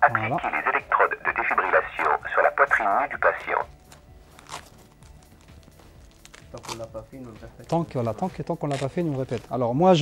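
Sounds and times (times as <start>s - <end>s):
recorded voice prompt from loudspeaker: 0.0s - 3.7s.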